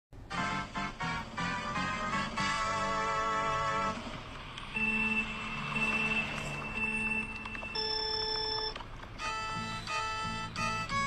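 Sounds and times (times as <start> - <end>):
steady electronic tones: 4.7 - 11.0.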